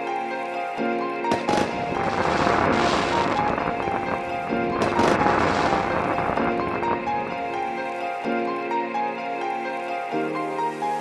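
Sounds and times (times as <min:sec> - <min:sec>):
soft background music: 0:00.0 - 0:11.0
fireworks crackle: 0:01.3 - 0:08.2.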